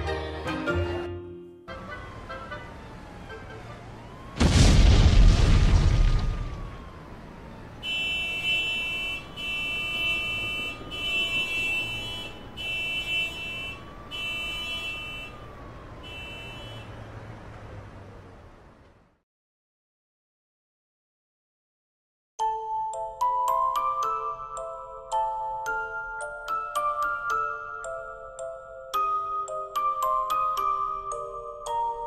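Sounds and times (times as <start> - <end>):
siren wailing: 1.7 - 4.5, 6.0 - 17.1
explosion boom: 4.4 - 6.8
car alarm: 7.8 - 16.9.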